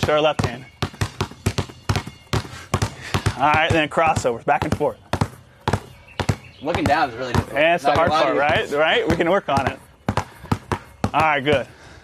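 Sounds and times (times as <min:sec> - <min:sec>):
basketballs bouncing on concrete: 0:00.0 - 0:12.0.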